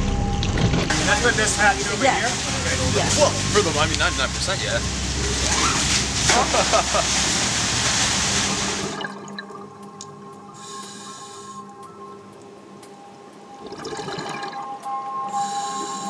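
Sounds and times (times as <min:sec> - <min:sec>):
calm ambient music: 0:00.0 - 0:16.0
water gushing and splashing: 0:00.6 - 0:10.0.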